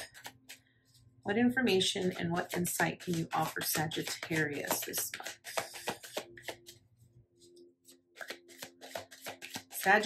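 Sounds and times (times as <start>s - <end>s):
cards shuffled by hand: 0.0s - 1.0s, 2.0s - 6.8s, 7.4s - 10.0s.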